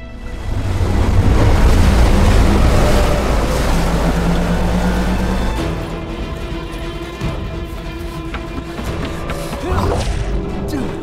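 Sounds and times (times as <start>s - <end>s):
deep rumble: 0.0s - 7.6s
rush of spraying water: 0.3s - 6.2s.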